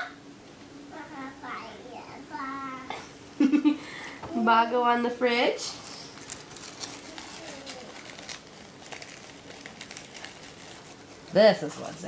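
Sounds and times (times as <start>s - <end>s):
packaging rustling and clicking: 6.1s - 11.4s.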